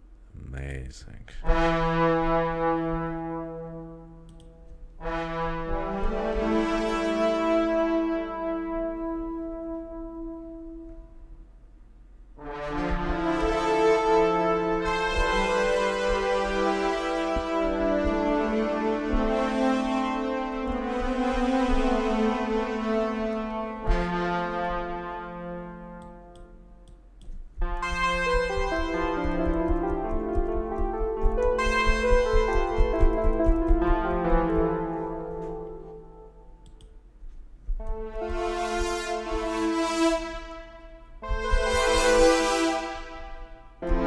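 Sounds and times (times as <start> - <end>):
brass ensemble chords: 0.5 - 11.3, 12.4 - 37.0, 37.7 - 44.0.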